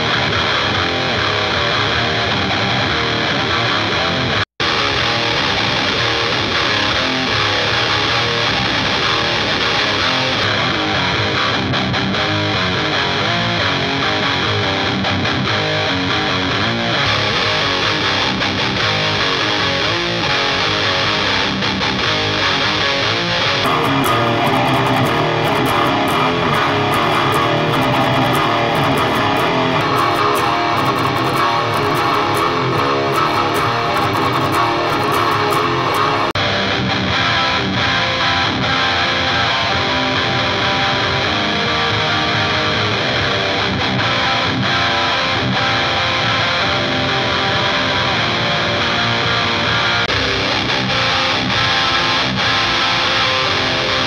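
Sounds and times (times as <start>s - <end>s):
distorted electric guitar riff: 0.0s - 54.0s.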